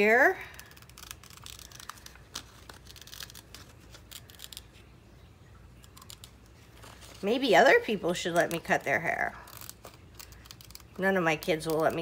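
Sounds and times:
scissors snipping paper: 0:00.5 - 0:04.7, 0:05.8 - 0:06.4
paper rustling: 0:00.5 - 0:04.9, 0:05.8 - 0:07.5.

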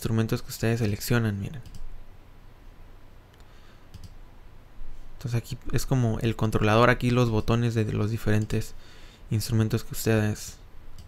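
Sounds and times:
low room hiss: 0:00.0 - 0:11.0
computer mouse clicks: 0:01.6 - 0:01.9, 0:03.3 - 0:04.2.

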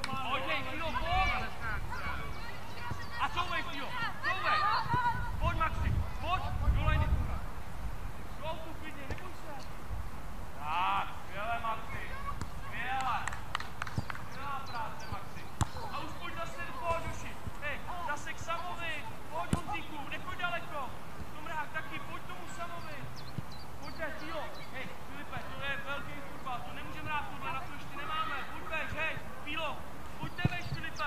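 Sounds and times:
children calling and shouting: 0:00.0 - 0:07.5, 0:10.9 - 0:23.0, 0:23.8 - 0:31.0
football being kicked: 0:15.5 - 0:15.9, 0:19.4 - 0:19.8.

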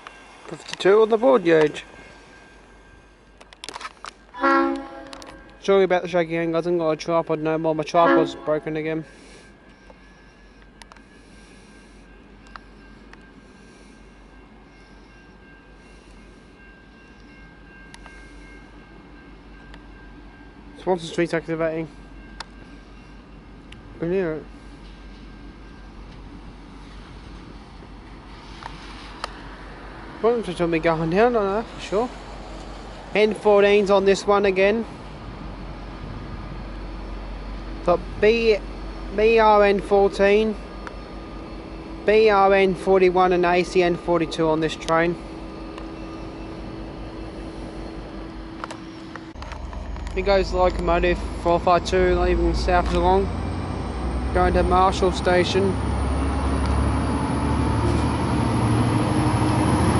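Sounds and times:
faint low train rumble: 0:00.0 - 0:59.9.

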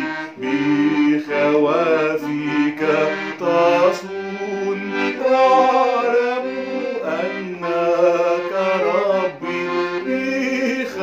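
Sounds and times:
accordion playing sustained chords: 0:00.0 - 0:11.0
man singing a slow hymn: 0:00.4 - 0:11.0.

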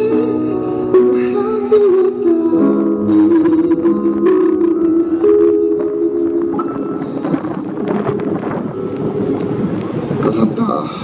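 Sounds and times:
sustained instrumental chords: 0:00.0 - 0:11.0
crowd murmur: 0:04.3 - 0:11.0.

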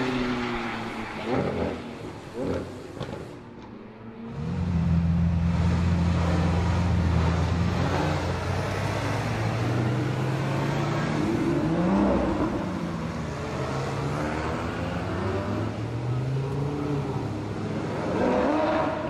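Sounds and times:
engine revving: 0:13.3 - 0:19.0.

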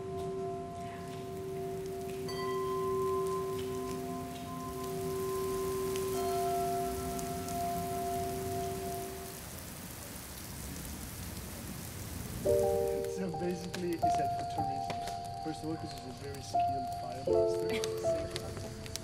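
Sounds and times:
ringing bell-like tones: 0:00.0 - 0:09.3, 0:13.1 - 0:17.6
rain falling on wet ground: 0:00.0 - 0:19.0.

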